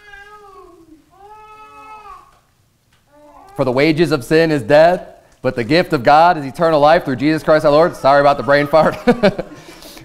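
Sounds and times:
small child crying out: 0:00.0 - 0:02.4, 0:03.1 - 0:03.6.

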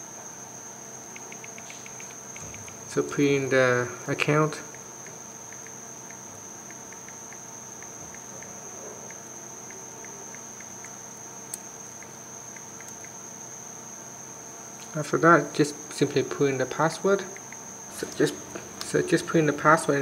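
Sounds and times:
sharp click: 0:01.1 - 0:02.8
touchscreen typing ticks: 0:01.2 - 0:02.8.

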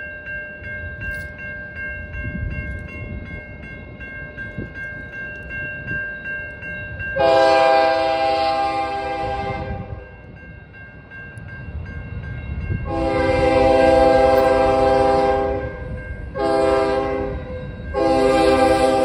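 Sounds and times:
crossing warning bell ringing: 0:00.0 - 0:19.0
locomotive air horn blasts: 0:07.2 - 0:10.0, 0:12.9 - 0:19.0.

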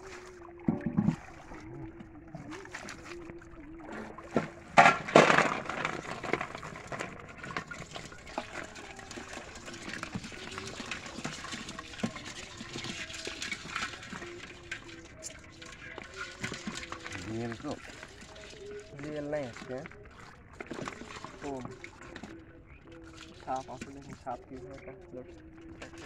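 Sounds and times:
crabs scrabbling in metal basin: 0:00.0 - 0:26.0
water trickling: 0:00.0 - 0:26.0.

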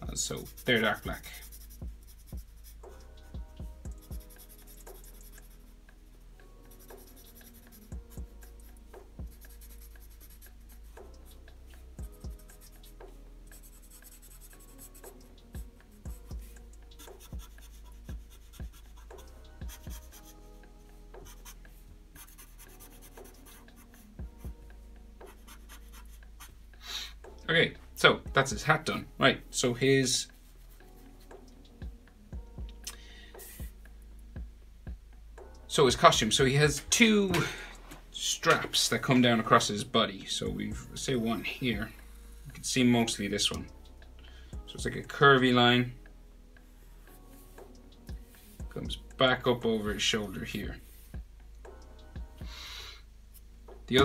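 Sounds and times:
faint background music: 0:00.0 - 0:54.0
marker pen scratching on paper: 0:00.2 - 0:03.0, 0:03.9 - 0:05.7, 0:06.7 - 0:08.1, 0:09.2 - 0:11.4, 0:12.0 - 0:20.4, 0:21.2 - 0:24.5, 0:25.2 - 0:26.6.

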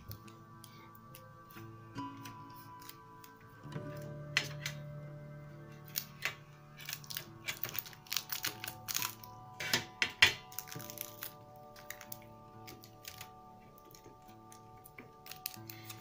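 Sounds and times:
quiet background music: 0:00.0 - 0:16.0.

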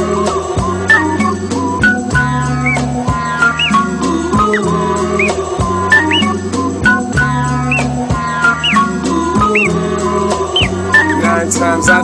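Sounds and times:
instrumental hip-hop beat: 0:00.2 - 0:12.0
high chirp-like pitch glide: 0:00.9 - 0:07.0, 0:07.6 - 0:09.8, 0:10.6 - 0:11.3.

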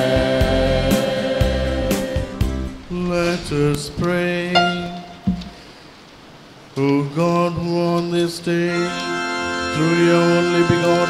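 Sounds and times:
priest chanting into a microphone: 0:09.7 - 0:11.0.

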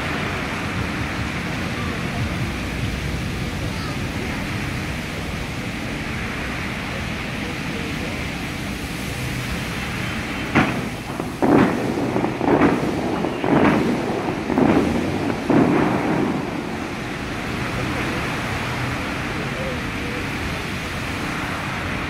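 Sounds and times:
falling spray: 0:00.0 - 0:22.0
fountain jets blasting: 0:00.0 - 0:22.0.

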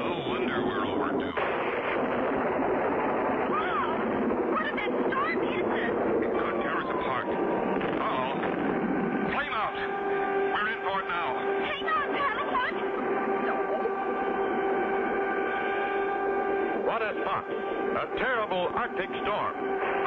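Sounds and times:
steady held tone: 0:00.0 - 0:20.0.

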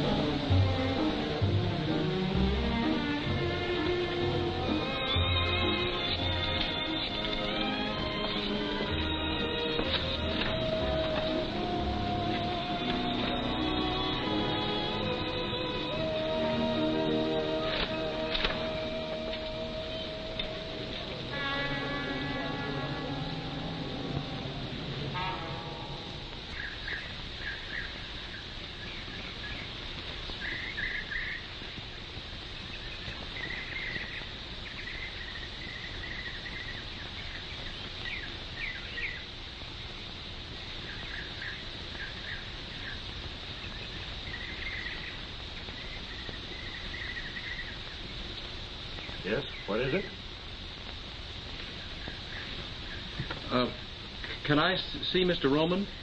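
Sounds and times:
music: 0:00.0 - 0:27.0
birds chirping: 0:00.0 - 0:56.0
film soundtrack hiss: 0:00.0 - 0:56.0.

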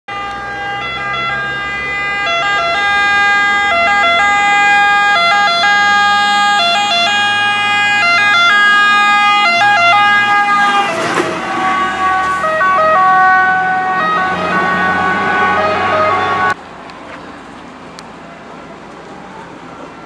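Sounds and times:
two-tone fire engine siren: 0:00.1 - 0:16.6, 0:18.8 - 0:20.0
engine and tyre noise passing: 0:00.1 - 0:20.0.

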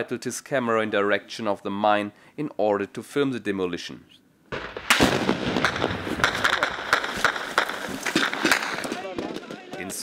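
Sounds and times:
gunfire shots: 0:04.5 - 0:10.0.

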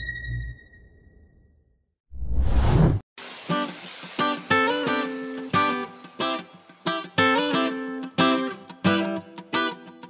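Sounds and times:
whoosh sound effect: 0:02.1 - 0:03.0.

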